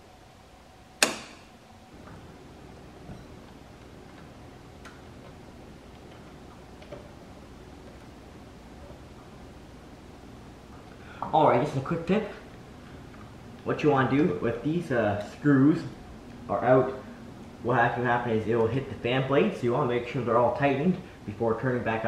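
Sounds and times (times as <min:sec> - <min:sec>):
circuit breaker snapping off: 0:01.0 - 0:01.6.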